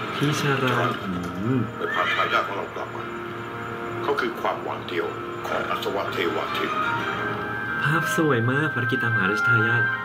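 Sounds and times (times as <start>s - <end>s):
soundtrack music: 1.4s - 10.0s
horse whinnying: 1.8s - 2.5s.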